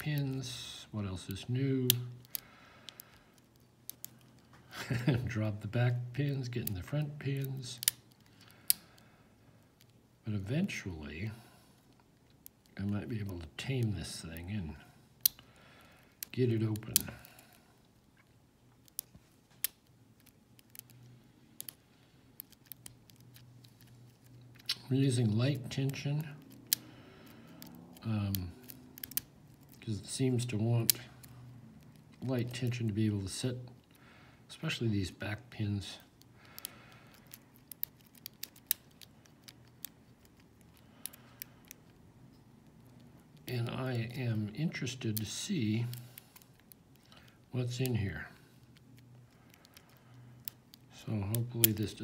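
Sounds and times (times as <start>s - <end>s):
lock pick clicking in lock: 28.6s - 29.8s, 36.5s - 41.9s.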